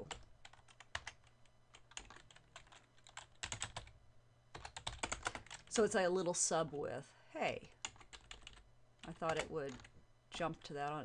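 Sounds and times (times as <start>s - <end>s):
computer keyboard typing: 0.0s - 5.7s, 7.8s - 10.4s.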